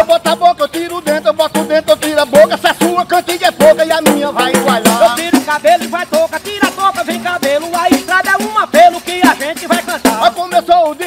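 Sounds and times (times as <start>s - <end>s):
frame drums with jingles: 0.0s - 11.0s
person singing: 0.0s - 11.0s.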